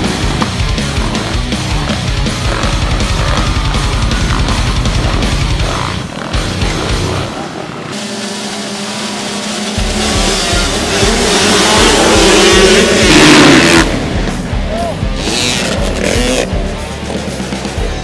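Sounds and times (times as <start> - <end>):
music with steady drum beat: 0.0 - 7.1, 9.3 - 18.0
motocross bikes revving: 0.0 - 18.0.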